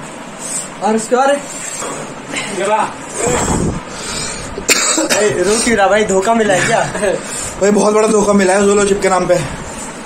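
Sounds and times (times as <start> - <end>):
man coughing hard: 4.6 - 5.5.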